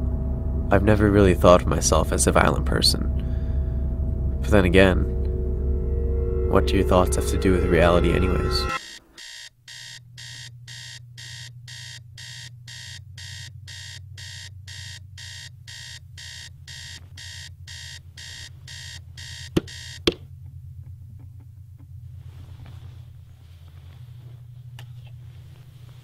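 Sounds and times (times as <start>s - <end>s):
steady low hum: 0.0s - 8.8s, 10.5s - 26.0s
alarm clock beeping: 6.0s - 20.2s.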